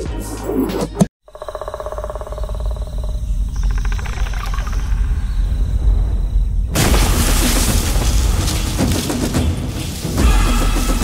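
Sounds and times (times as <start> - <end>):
deep rumble: 2.3 - 11.0.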